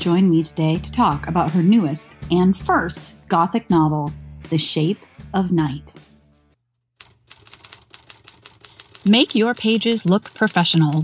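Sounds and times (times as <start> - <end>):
keyboard typing clicks: 7.0 - 11.0.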